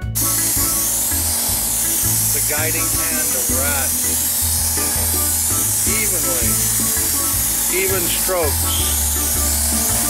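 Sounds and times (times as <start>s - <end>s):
music: 0.0s - 10.0s
paint spray gun hissing: 0.0s - 10.0s.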